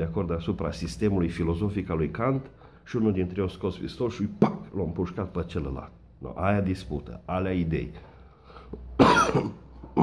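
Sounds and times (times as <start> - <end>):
man coughing: 4.3 - 4.8, 9.0 - 10.0.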